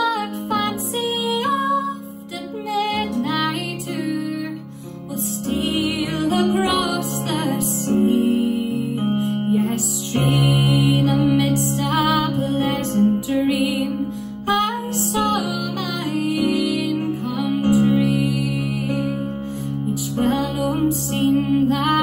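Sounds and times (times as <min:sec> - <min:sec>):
sustained instrumental chords: 0:00.0 - 0:14.6
woman singing folk ballad: 0:00.0 - 0:22.0.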